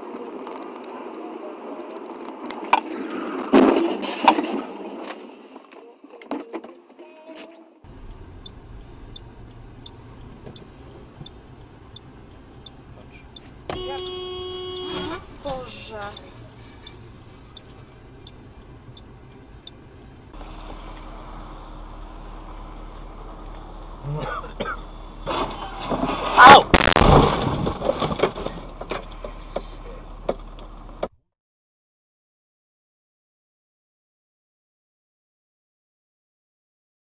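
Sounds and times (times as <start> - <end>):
road noise: 0.0 - 31.2
light ticking: 7.9 - 20.4
car horn: 13.7 - 16.8.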